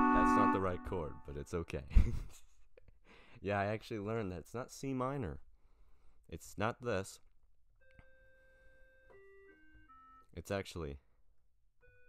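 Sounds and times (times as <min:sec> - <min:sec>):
electronic keyboard notes: 0:00.0 - 0:01.3.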